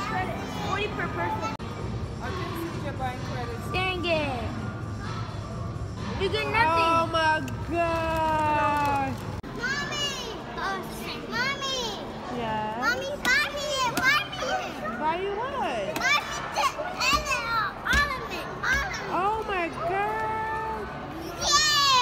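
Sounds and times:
children chattering and squealing: 9.4 - 19.2, 20.8 - 22.0.

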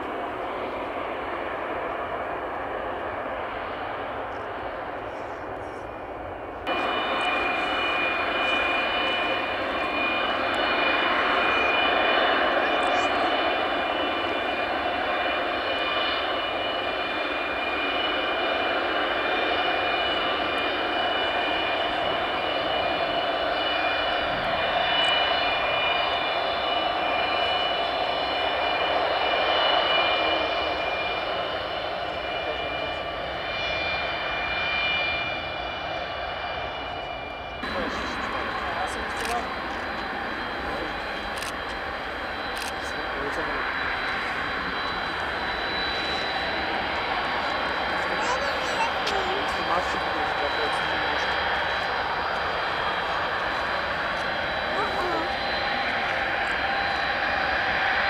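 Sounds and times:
high jet engine whine: 0.0 - 58.0
jet engines at high power: 0.0 - 58.0.

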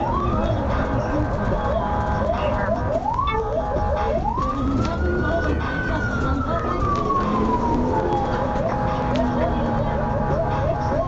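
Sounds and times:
car engine and road noise: 0.0 - 11.0
police siren yelp and wail: 0.0 - 11.0.

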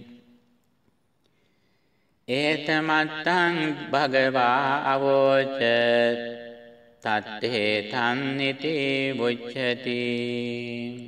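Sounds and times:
man chanting: 2.3 - 11.0.

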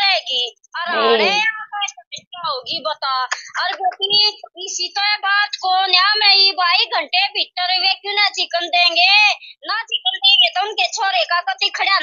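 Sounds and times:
woman wailing: 0.9 - 1.4.

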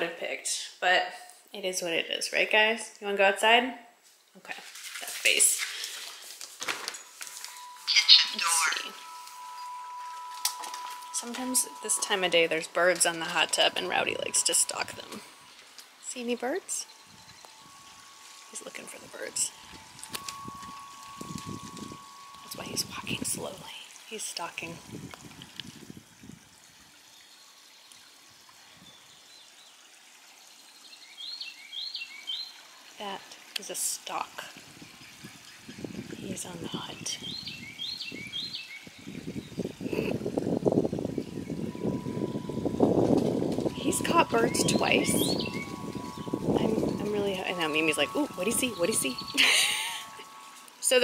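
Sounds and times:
water trickling: 4.0 - 51.0
high bird chirps: 7.2 - 23.9, 40.9 - 50.8
faint high tone: 7.4 - 24.8, 41.7 - 51.0.

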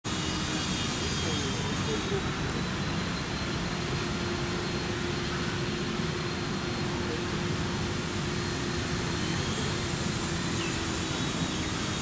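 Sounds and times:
constant low hum: 0.1 - 12.0
faint distant voices: 0.2 - 12.0.

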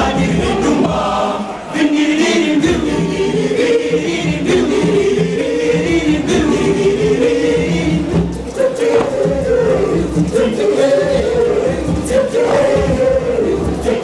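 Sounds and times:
boys choir singing: 0.0 - 14.0.

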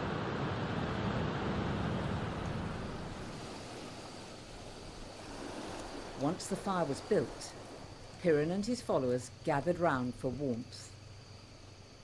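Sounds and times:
wind on microphone: 0.0 - 6.3
surf washing on sandy beach: 0.0 - 9.1.

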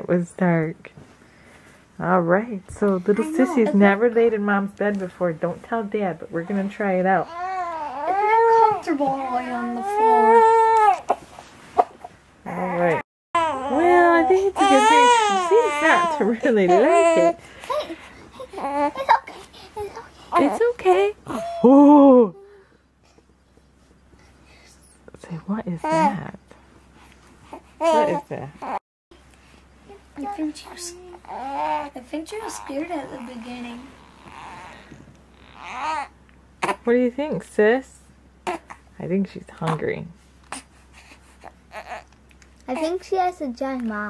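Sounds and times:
newborn baby crying: 7.2 - 11.2, 12.5 - 19.2, 25.8 - 26.2, 27.5 - 28.8, 31.1 - 36.9, 38.4 - 38.9, 40.4 - 42.2.

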